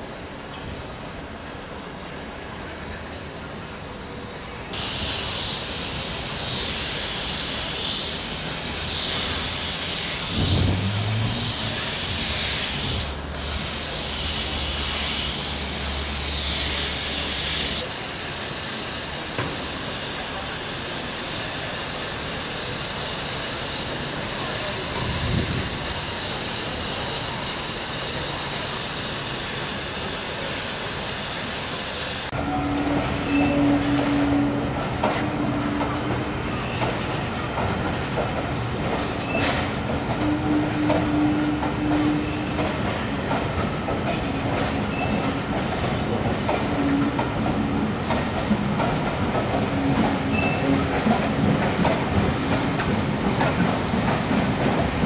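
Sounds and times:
steam hissing: 0:04.7 - 0:32.4.

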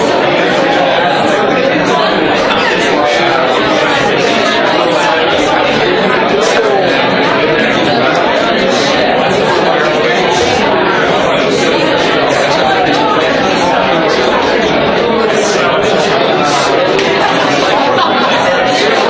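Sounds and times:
crowd chatter: 0:00.0 - 0:19.0.

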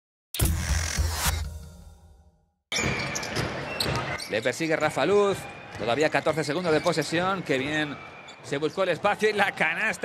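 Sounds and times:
arena crowd noise: 0:02.7 - 0:10.0.

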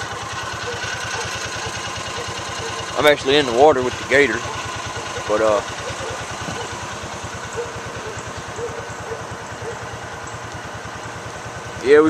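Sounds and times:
utility vehicle engine running: 0:00.0 - 0:12.0.

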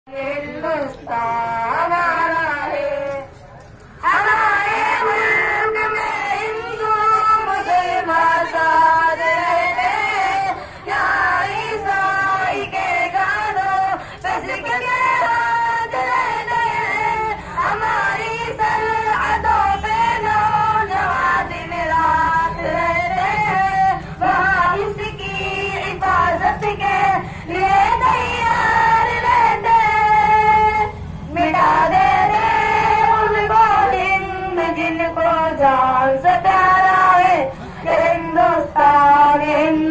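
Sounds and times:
young voices singing in unison: 0:04.0 - 0:39.9.

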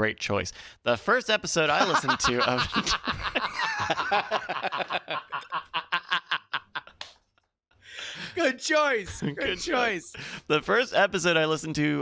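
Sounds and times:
man chuckling: 0:01.7 - 0:07.0.

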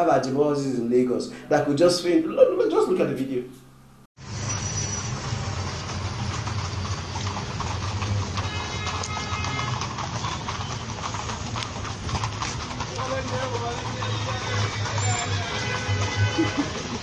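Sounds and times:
voices: 0:00.1 - 0:03.5, 0:12.8 - 0:16.8
music playing: 0:02.0 - 0:03.3
traffic: 0:04.2 - 0:17.0
hooves clip-clopping on pavement: 0:05.0 - 0:17.0.

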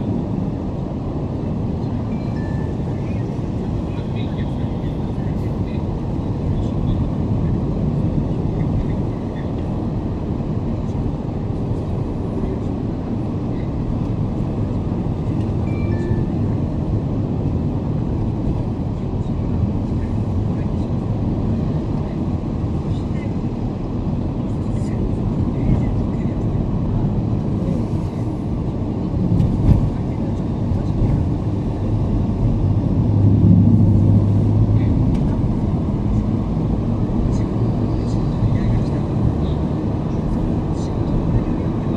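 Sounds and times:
car road and engine noise: 0:00.0 - 0:41.9
passing traffic drone: 0:00.0 - 0:41.9.

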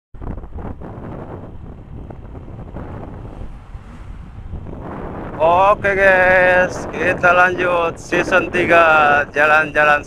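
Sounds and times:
motorcycle low rumble: 0:00.2 - 0:10.0
tyres on road: 0:00.2 - 0:10.0
wind rushing over microphone: 0:00.2 - 0:10.0.

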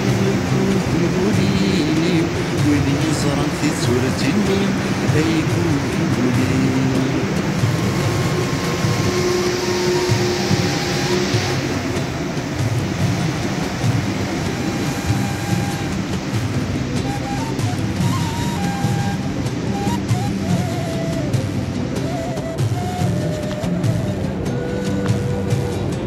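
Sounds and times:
metro train running: 0:00.0 - 0:26.0.

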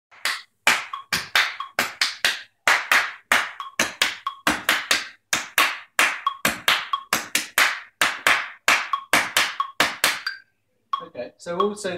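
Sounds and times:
hand claps: 0:00.1 - 0:10.4.

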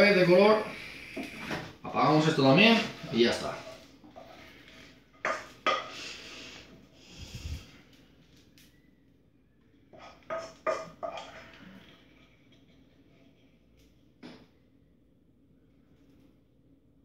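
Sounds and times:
spatula scraping frying pan: 0:02.8 - 0:06.2, 0:09.9 - 0:13.6
spatula knocking on pan: 0:10.3 - 0:11.2.

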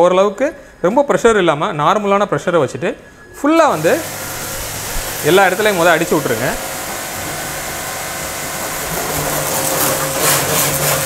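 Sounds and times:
pressure washer motor humming: 0:03.6 - 0:11.0
water jet spraying on car: 0:03.6 - 0:11.0.

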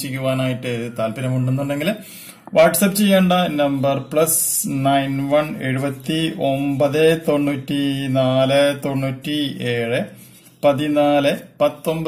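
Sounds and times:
man reading out digits: 0:00.0 - 0:12.0.

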